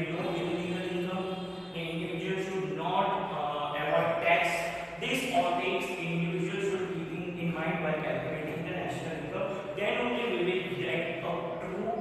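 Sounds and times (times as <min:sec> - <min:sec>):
man's monotone voice: 0:00.0 - 0:12.0.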